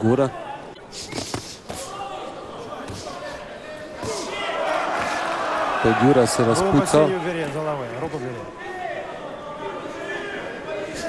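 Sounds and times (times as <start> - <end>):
arena crowd shouting: 1.8 - 11.0.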